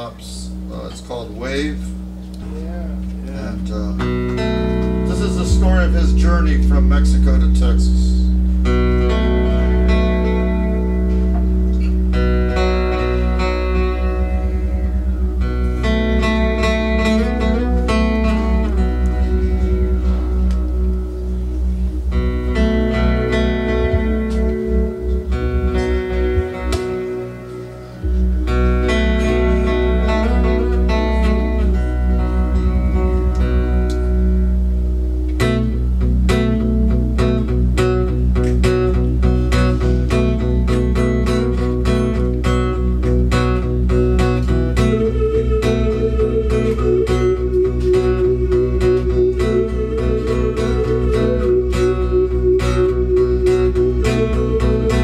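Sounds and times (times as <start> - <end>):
acoustic guitar strumming: 0.0 - 55.0
deep bass: 0.0 - 55.0
keyboard chords: 0.0 - 55.0.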